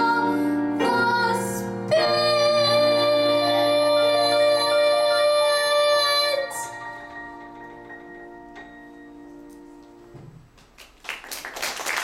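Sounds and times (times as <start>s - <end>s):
girl singing: 0.0s - 6.8s
piano chord ringing: 0.0s - 10.4s.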